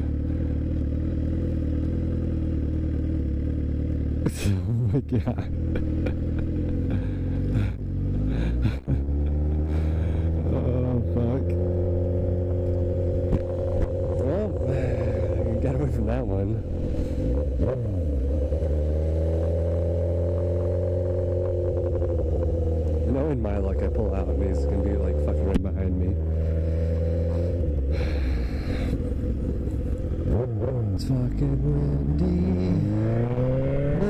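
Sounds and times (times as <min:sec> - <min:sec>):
motorcycle engine at low revs: 0:00.0 - 0:34.0.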